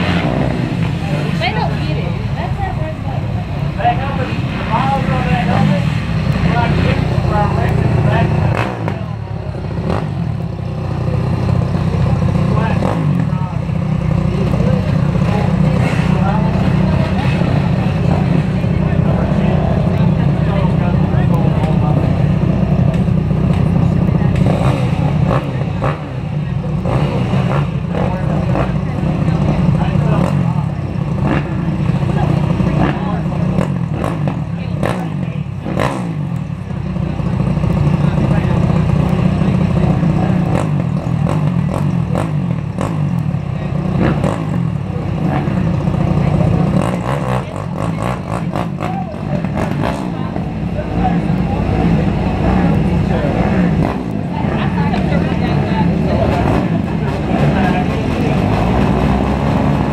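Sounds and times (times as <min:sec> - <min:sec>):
dirt bike engines idling and revving: 0:00.0 - 0:59.9.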